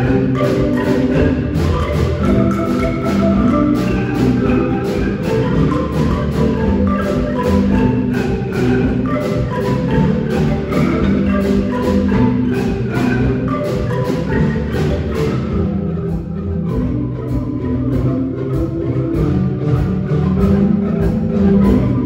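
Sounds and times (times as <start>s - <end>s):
marimba ensemble playing: 0.0s - 22.0s.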